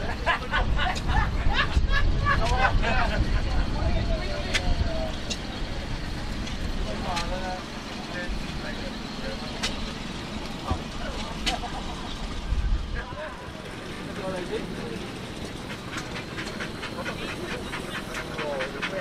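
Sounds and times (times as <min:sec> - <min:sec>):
people talking: 0:00.0 - 0:19.0.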